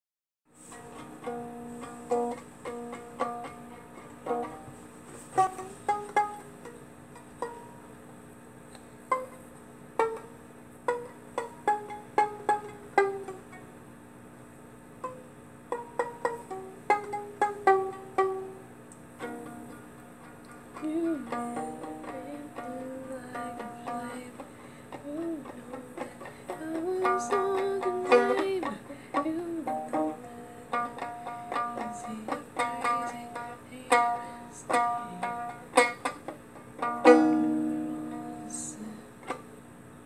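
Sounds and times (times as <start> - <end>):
violin plucked notes: 0.7 - 4.8, 5.4 - 7.8, 9.1 - 13.7, 15.0 - 39.4.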